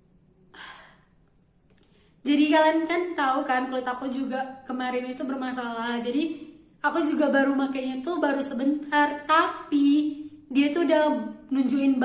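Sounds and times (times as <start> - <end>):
woman sighing: 0.5 - 1.2.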